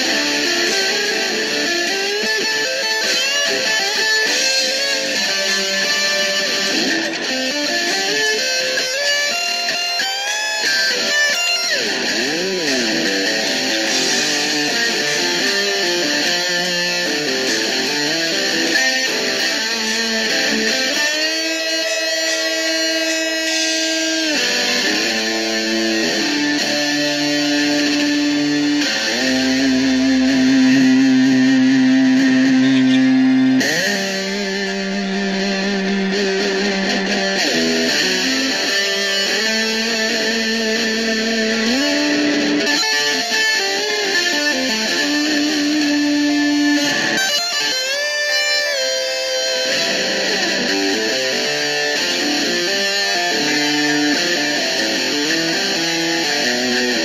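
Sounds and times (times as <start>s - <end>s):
electric guitar lead lines: 0.0s - 57.0s.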